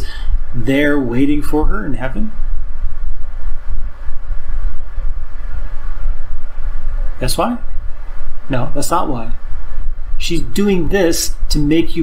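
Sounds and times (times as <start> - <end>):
loud low uneven rumble: 0.0 - 12.0.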